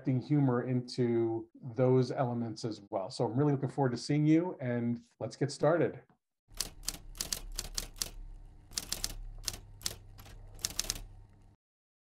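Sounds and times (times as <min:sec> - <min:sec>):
typewriter keys clacking: 0:06.6 - 0:11.1.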